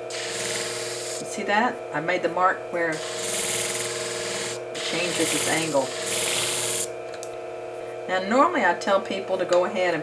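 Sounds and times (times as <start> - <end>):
blade grinding on sharpener: 0.0 - 1.4, 2.9 - 6.9
machine motor hum: 0.0 - 2.0.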